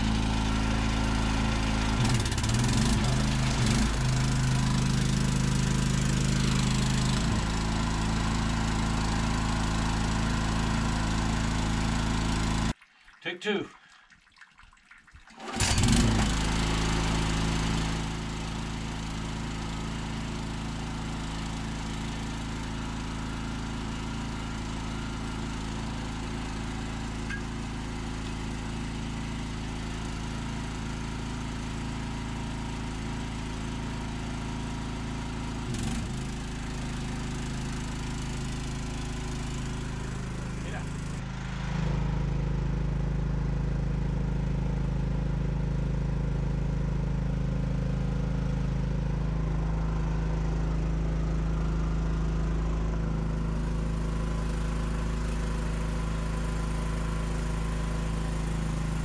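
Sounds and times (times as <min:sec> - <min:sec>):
generator engine running: 0:00.0 - 0:12.8, 0:15.4 - 0:59.0.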